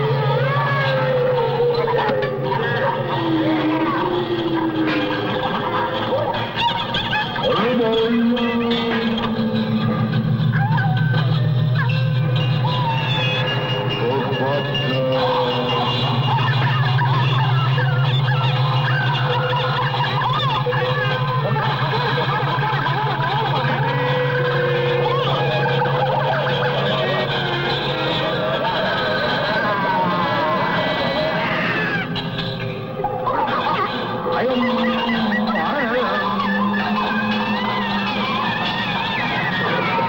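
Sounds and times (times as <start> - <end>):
low electronic drone: 0.0 - 40.0
sliding warbling tones: 0.0 - 40.0
electronic music: 31.7 - 40.0.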